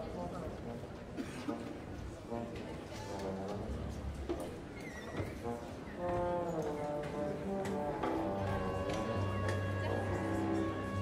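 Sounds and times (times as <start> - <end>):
scattered orchestral notes: 0.0 - 11.0.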